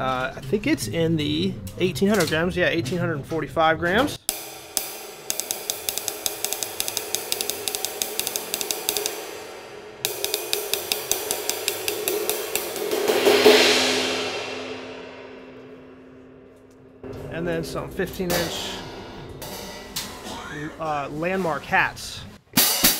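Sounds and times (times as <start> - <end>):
drumstick tapping ride cymbal: 4.3 - 20.3
cymbal wash: 4.3 - 20.4.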